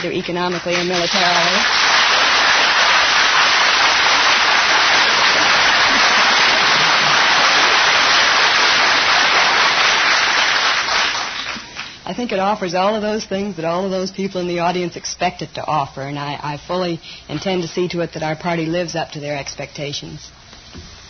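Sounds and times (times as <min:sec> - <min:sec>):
studio audience applauding: 0:00.0 - 0:12.0.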